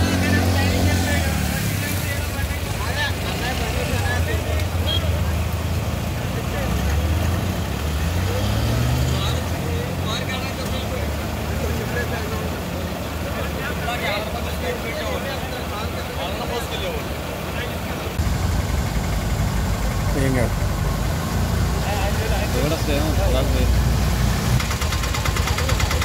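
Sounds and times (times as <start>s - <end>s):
people's voices: 0.0s - 18.2s, 19.8s - 26.0s
floodwater rushing across road: 0.0s - 26.0s
engine running: 17.1s - 26.0s.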